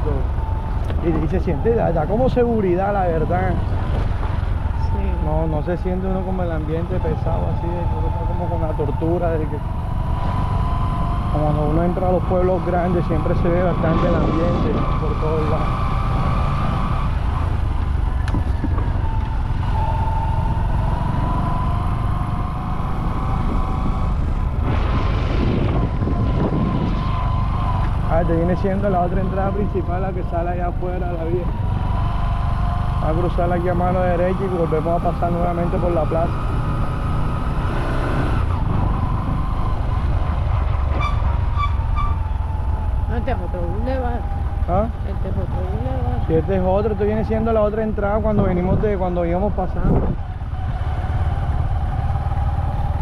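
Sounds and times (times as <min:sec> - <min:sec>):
vehicle engine and road rumble: 0:00.0 - 0:53.0.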